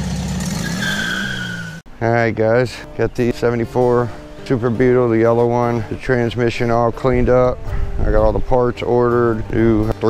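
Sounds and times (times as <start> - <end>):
car engine running: 0.0 - 0.8
tire squeal: 0.0 - 1.8.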